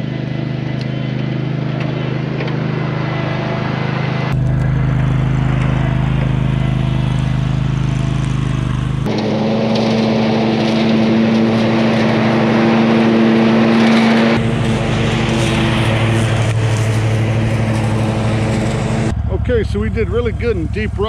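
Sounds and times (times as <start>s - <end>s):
mower engine running: 0.0s - 21.0s.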